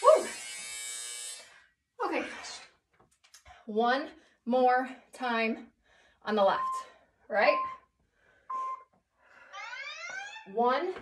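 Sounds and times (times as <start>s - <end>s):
electronic timer buzzer: 9.5s - 10.5s.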